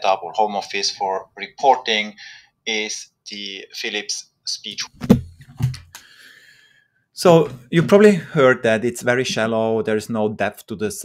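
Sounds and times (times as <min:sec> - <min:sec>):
headset handling knocks: 0:04.9 - 0:06.0.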